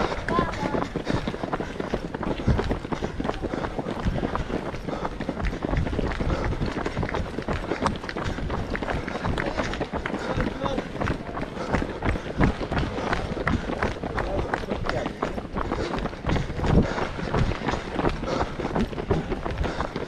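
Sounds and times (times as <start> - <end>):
footsteps on gravel: 0.0 - 20.0.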